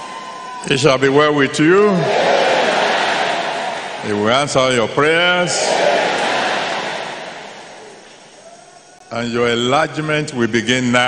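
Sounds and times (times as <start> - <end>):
congregation shouting response: 1.6 - 8.6.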